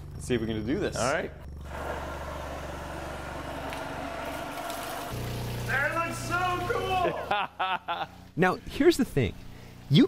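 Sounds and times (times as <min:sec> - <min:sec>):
water spraying from hose: 0:01.7 - 0:07.0.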